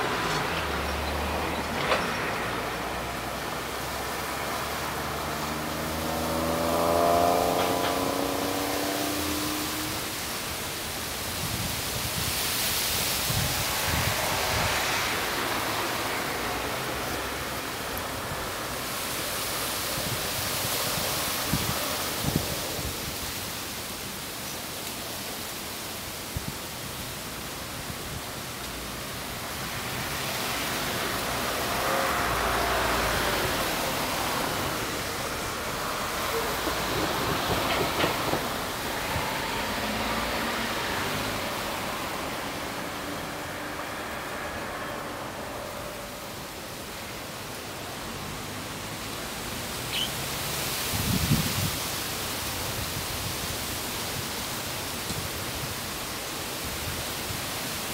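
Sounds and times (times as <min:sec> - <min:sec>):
vehicles passing: 0:00.0 - 0:57.9.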